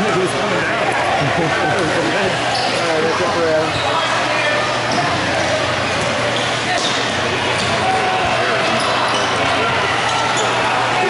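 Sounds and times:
voices calling out in echoing hall: 0.0 - 11.0
shoes squeaking on floor: 2.4 - 7.8, 8.6 - 10.7.

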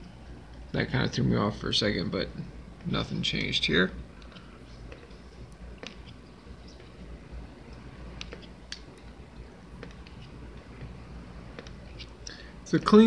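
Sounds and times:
cards being flipped: 8.1 - 9.2, 9.8 - 10.9.

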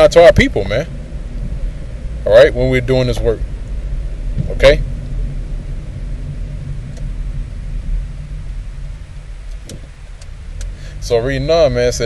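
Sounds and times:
engine idling rumble: 0.0 - 12.0
low hum: 0.0 - 12.0.

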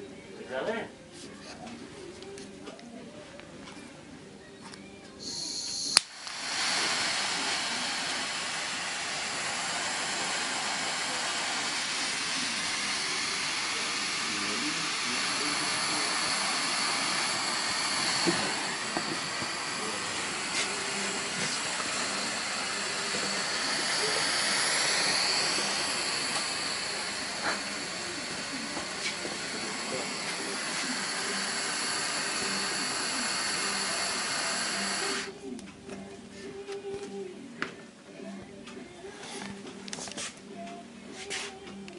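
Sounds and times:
igniter click: 5.2 - 6.4
torch flame hissing: 5.2 - 35.4.

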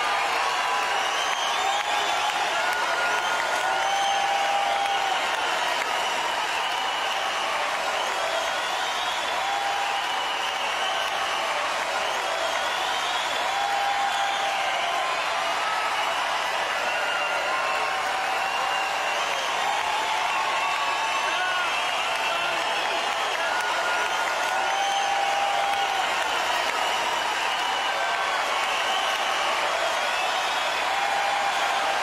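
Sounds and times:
crowd cheering and applauding: 0.0 - 32.0
shouts from crowd: 0.0 - 32.0
whistles from crowd: 0.0 - 32.0.

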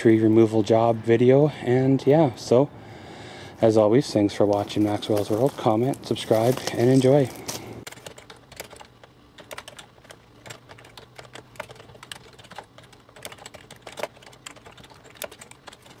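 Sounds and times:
typing on computer keyboard: 7.8 - 16.0.

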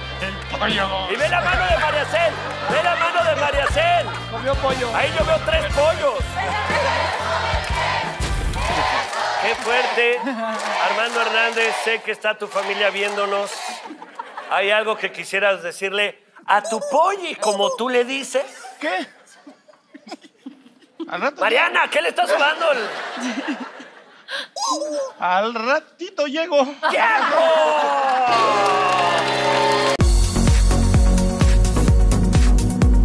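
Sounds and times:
audience shouting and whooping: 0.0 - 4.4, 6.2 - 12.0, 26.8 - 30.0
people laughing: 0.6 - 7.0, 10.0 - 11.0, 13.6 - 15.2, 16.6 - 25.1, 26.6 - 29.2
music with steady bass beat: 30.0 - 33.0.

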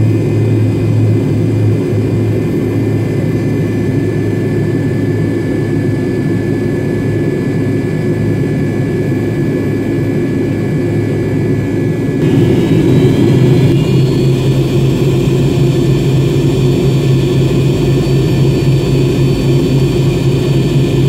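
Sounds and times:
jet engines rumbling with whine: 0.0 - 21.0.

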